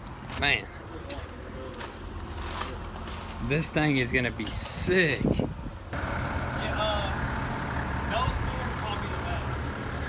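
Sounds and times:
footsteps crunching on gravel: 0.0 - 4.6.

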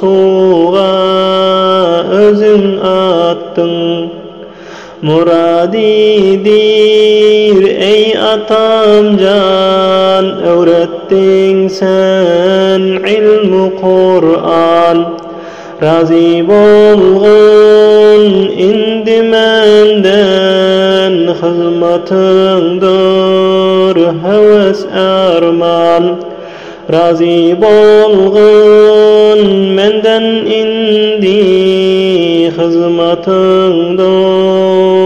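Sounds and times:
person chanting with ornamented notes: 0.0 - 4.4, 5.0 - 26.3, 26.9 - 35.0.

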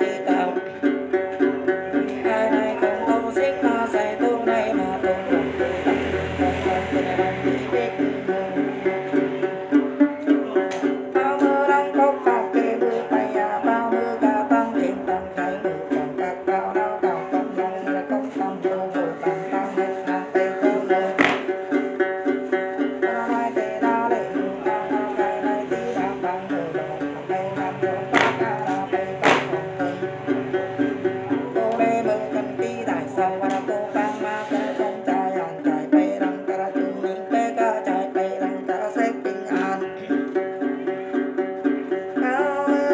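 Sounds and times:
plucked long-necked lute: 0.0 - 42.9.

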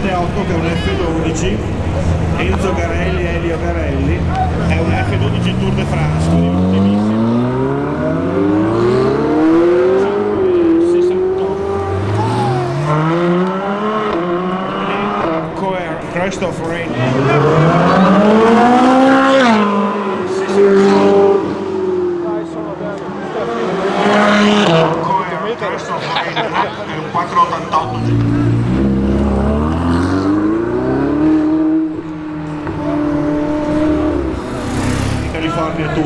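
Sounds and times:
sports car engines revving: 0.0 - 26.2, 27.2 - 36.0.

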